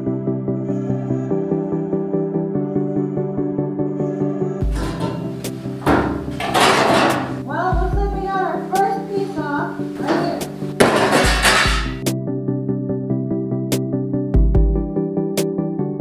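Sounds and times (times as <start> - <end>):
background music: 0.0 - 16.0
woman speaking: 7.4 - 10.6.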